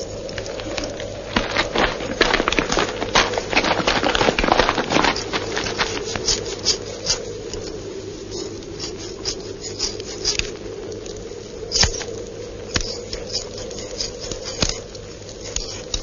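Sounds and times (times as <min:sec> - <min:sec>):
steady soundtrack hum: 0:00.0 - 0:16.0.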